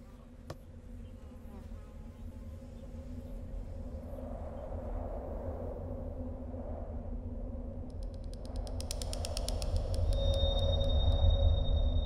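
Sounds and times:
low rumbling drone: 2.9 - 12.0
rapid sharp clicks: 7.9 - 10.8.

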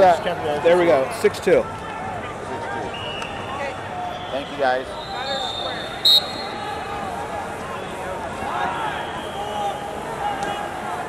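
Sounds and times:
referee's whistle: 2.9 - 6.7, 8.9 - 10.6.

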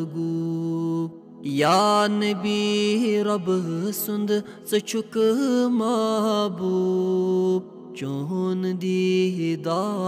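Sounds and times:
man singing long held notes: 0.0 - 10.0.

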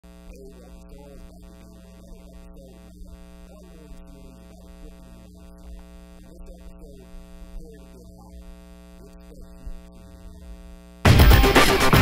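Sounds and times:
electrical mains hum: 0.0 - 11.1.

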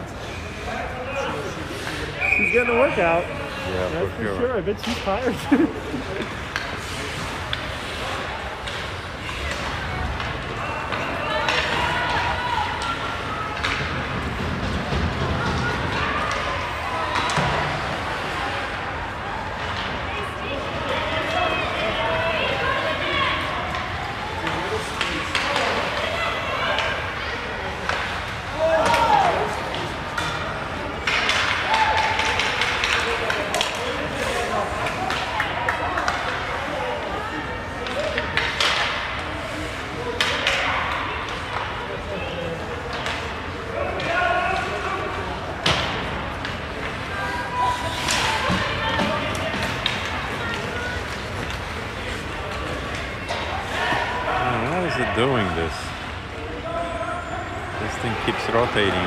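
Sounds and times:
spectators voices: 0.0 - 59.0
sticks and puck clacking: 6.2 - 18.7, 23.4 - 36.8, 37.7 - 56.1.

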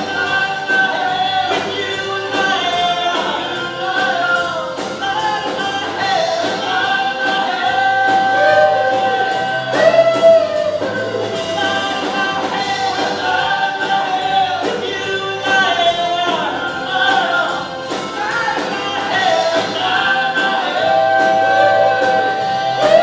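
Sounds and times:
drum kit cymbal beat: 0.0 - 23.0
lead vocal singing: 0.0 - 23.0
strummed guitars: 0.0 - 23.0.

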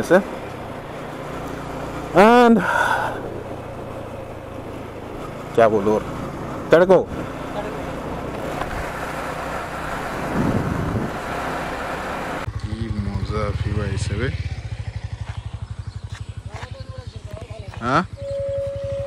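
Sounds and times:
motorcycle riding at speed: 0.0 - 19.0
motorcycle engine idling: 0.2 - 8.3, 12.4 - 19.0
voices: 2.1 - 3.4, 5.4 - 8.3, 12.5 - 14.5, 16.2 - 19.0
wind rushing over microphone: 10.0 - 11.5.

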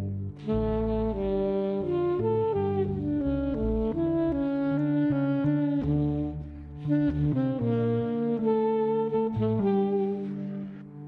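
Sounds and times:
low bass line: 0.0 - 11.0
saxophone jazz melody: 0.0 - 11.0.

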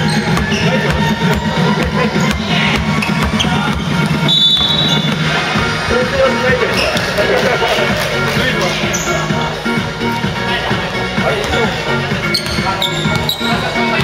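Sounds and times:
basketball bouncing on wooden floor: 0.0 - 5.3, 12.4 - 13.6
shoe squeak: 0.0 - 5.3, 6.6 - 7.2, 8.8 - 9.4, 12.2 - 14.0
music playing: 0.0 - 14.0.

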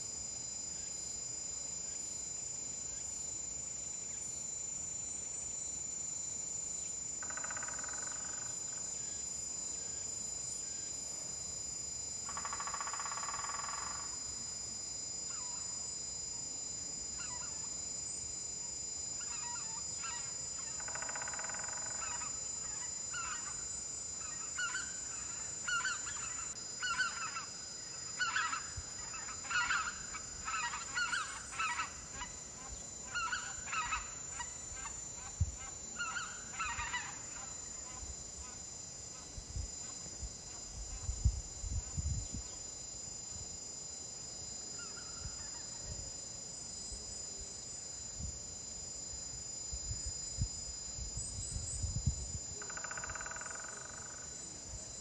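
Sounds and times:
high insect drone: 0.0 - 55.0
wild birds calling: 28.2 - 32.3.

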